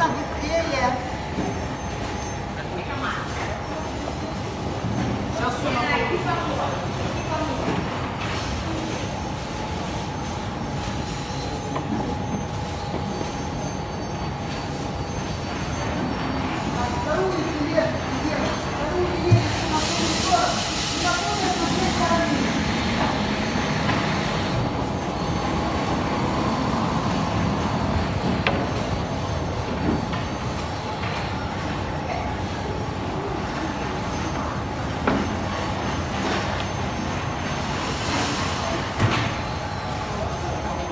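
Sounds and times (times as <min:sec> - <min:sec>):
faint machine whine: 0:00.0 - 0:40.9
production line machinery running: 0:00.0 - 0:40.9.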